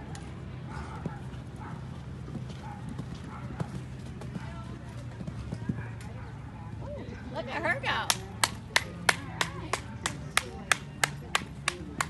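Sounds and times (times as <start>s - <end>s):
person clapping: 8.1s - 12.0s.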